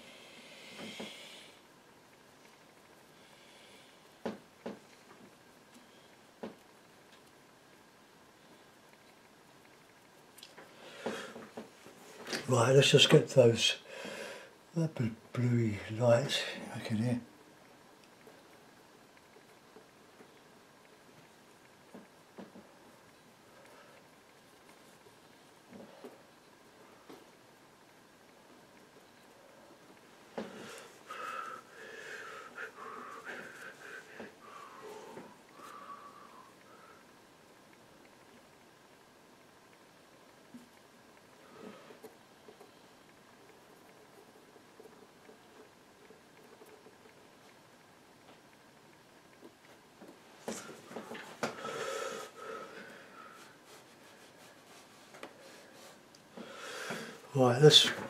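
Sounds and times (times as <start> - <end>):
person breathing noisily: 0.0 - 1.6, 13.9 - 14.6, 30.4 - 37.1, 50.5 - 53.8, 55.4 - 57.3
soft breathy whistling: 34.4 - 37.0.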